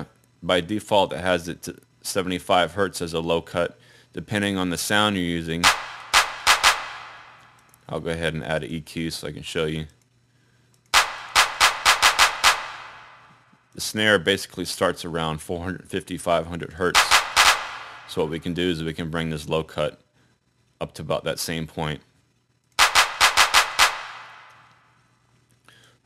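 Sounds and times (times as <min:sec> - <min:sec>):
electronic clap roll: 0:05.6 - 0:07.8, 0:10.9 - 0:13.6, 0:16.9 - 0:18.5, 0:22.8 - 0:24.8.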